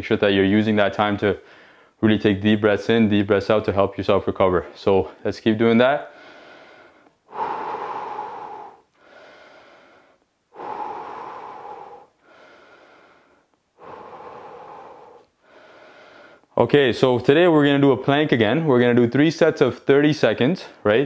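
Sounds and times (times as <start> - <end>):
man breathing deeply: 1.4 - 2.0, 6.1 - 16.6.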